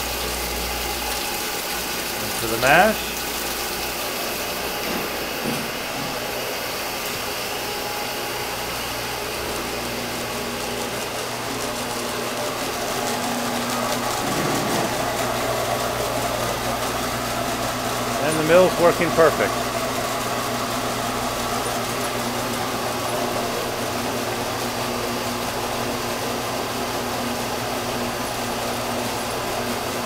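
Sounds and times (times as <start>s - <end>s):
motor hum: 0.0s - 30.0s.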